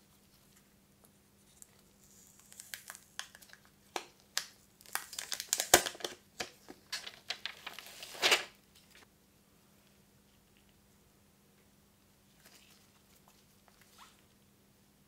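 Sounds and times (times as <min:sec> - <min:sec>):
plastic film peeling and crackling: 0:01.5 - 0:09.0.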